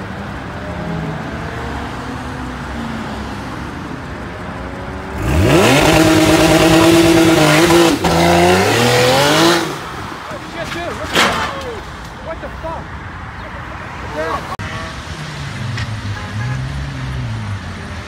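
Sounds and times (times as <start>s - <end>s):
car engine revving: 0.2s - 10.3s.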